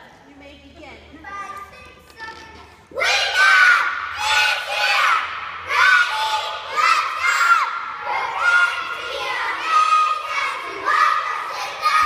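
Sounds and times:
cheerleaders shouting a cheer: 0:02.9 - 0:12.0.

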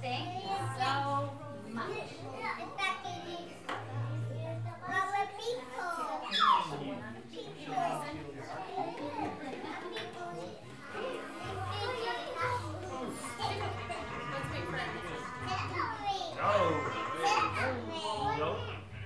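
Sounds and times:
young children chattering: 0:00.0 - 0:19.0.

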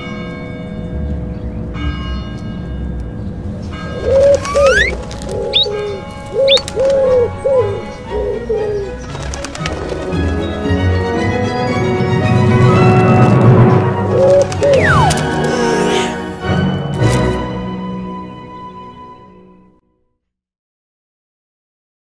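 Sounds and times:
soft background music: 0:00.8 - 0:19.8
cartoon pigeon cooing calls: 0:04.0 - 0:09.0, 0:14.1 - 0:16.4
rising whistle glide: 0:04.1 - 0:06.6, 0:14.6 - 0:15.4
short high chirps: 0:04.4 - 0:05.8.

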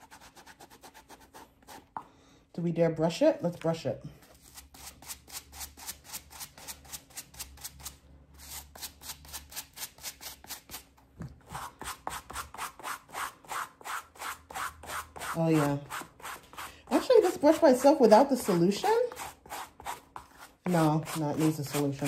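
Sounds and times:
brush scrubbing a shoe: 0:11.6 - 0:22.0.

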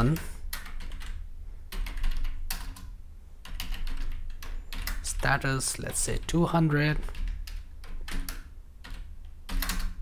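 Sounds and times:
typing on computer keyboard: 0:00.0 - 0:05.3, 0:06.1 - 0:10.0.

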